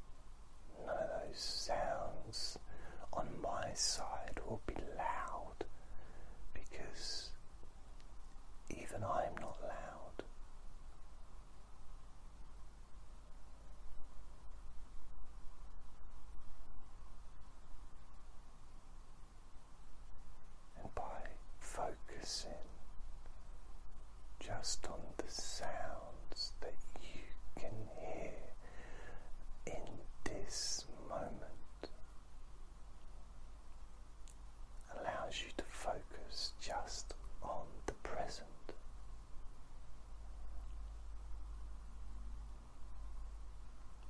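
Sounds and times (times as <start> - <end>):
steady low hum: 0.0 - 44.0
man whispering: 0.7 - 7.5, 8.6 - 10.4, 20.7 - 23.0, 23.9 - 32.1, 34.8 - 38.9.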